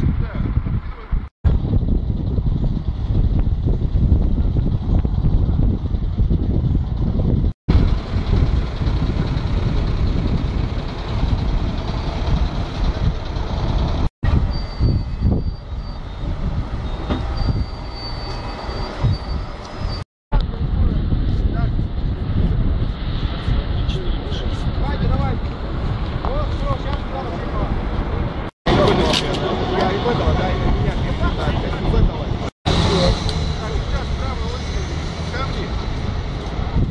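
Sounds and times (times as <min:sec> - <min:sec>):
wind buffeting the microphone: 0:00.0 - 0:17.8, 0:18.8 - 0:33.9, 0:35.4 - 0:36.9
road traffic on a bridge: 0:00.0 - 0:36.9.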